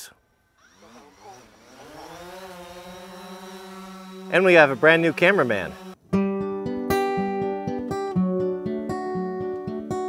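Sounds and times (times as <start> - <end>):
drone propellers buzzing: 0.6 - 6.0.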